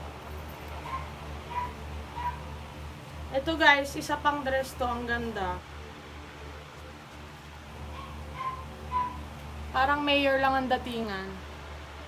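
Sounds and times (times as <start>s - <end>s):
steady low hum: 0.0s - 12.0s
short high calls: 8.0s - 9.3s.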